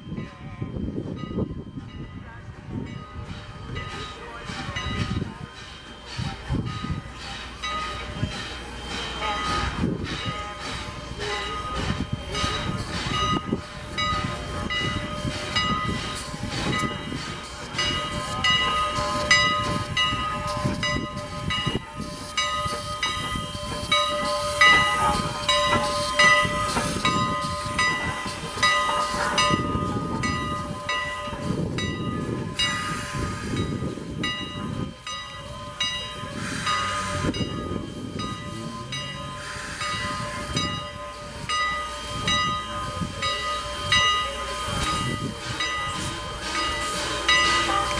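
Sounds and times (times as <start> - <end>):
steam hissing: 2.5 - 47.9.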